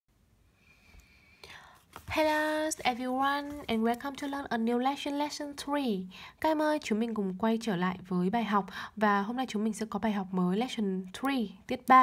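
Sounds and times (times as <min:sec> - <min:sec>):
soft rustle: 0:00.7 - 0:04.3.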